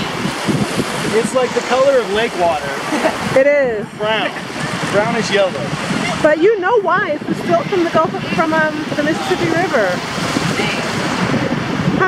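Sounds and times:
small surf waves washing in: 0.0s - 12.0s
wind buffeting microphone: 0.0s - 12.0s.

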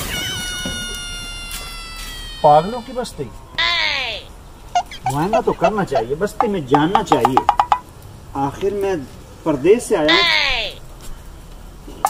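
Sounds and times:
high-pitched sliding call: 0.0s - 4.2s, 4.8s - 6.2s.

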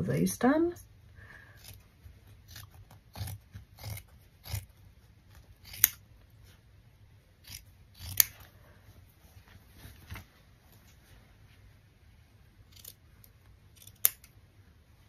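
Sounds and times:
scissors snipping fabric: 1.6s - 6.1s, 7.4s - 8.6s, 12.7s - 14.4s
fabric handling: 8.3s - 13.7s.

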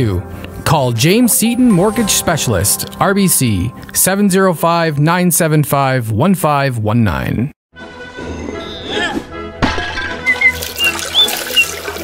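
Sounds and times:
background music: 0.0s - 6.1s, 7.7s - 12.0s
watery splashy noises: 10.3s - 12.0s.

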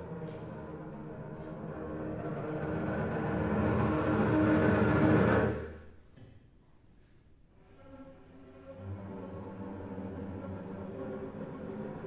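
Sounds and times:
low strings bowing sustained notes: 0.0s - 5.8s, 7.6s - 12.0s.

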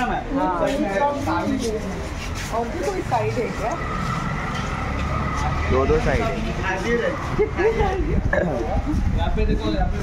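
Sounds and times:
vehicle engine rumbling: 1.3s - 10.0s.

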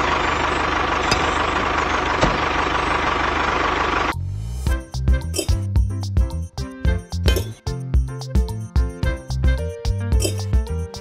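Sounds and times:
tractor engine idling: 0.0s - 6.3s.

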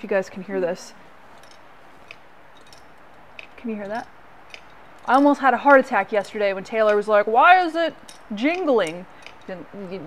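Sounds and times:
loose part jingling in housing: 1.2s - 10.0s.

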